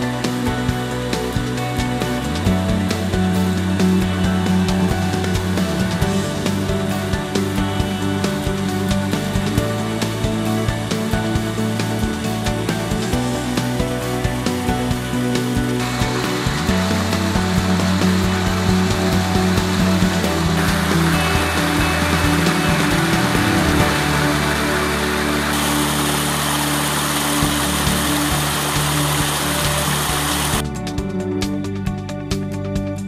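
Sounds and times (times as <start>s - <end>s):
background music with held tones: 0.0s - 33.0s
stream and waterfall rushing: 15.4s - 30.6s.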